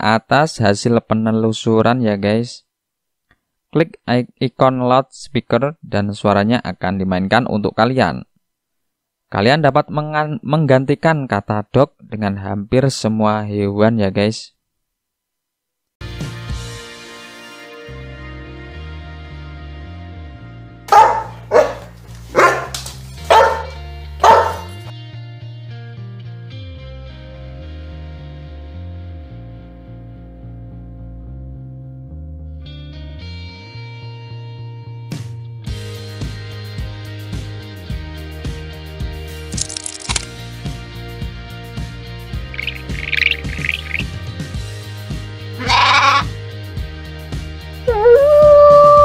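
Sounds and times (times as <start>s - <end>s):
dog barking: 20.9s - 24.9s
background music with steady beat: 40.3s - 47.9s
short high chirps: 42.5s - 44.1s
sheep bleat: 45.6s - 46.4s.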